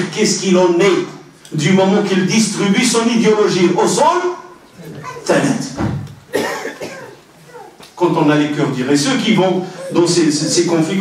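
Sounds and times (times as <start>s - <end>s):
person coughing: 6.3s - 7.2s.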